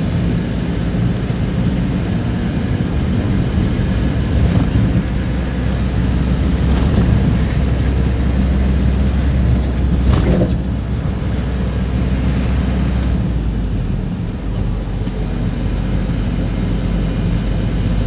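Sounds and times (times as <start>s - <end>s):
truck engine drone: 0.0s - 18.0s
tyre and road noise: 0.0s - 18.0s.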